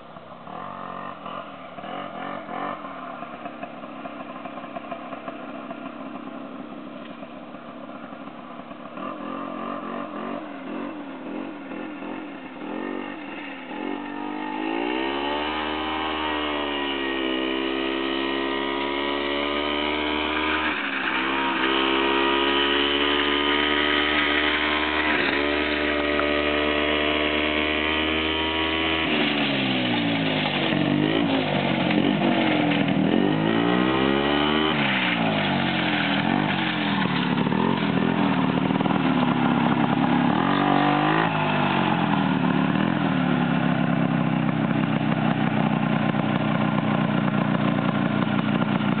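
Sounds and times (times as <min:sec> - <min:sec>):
snowmobile engine running: 0:00.6 - 0:49.0.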